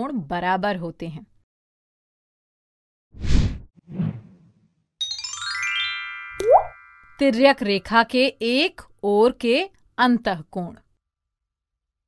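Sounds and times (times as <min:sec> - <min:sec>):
cartoon swishes: 0:03.2 - 0:04.5.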